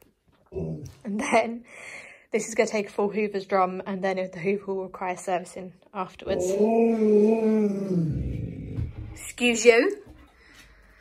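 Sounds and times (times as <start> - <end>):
dog howling into grumble: 6.3 - 8.8.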